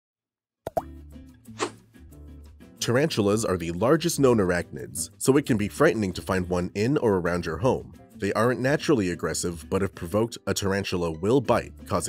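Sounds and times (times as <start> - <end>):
sharp pop with upward sweep: 0.7 - 0.9, 1.6 - 1.8
short whoosh: 1.5 - 1.8.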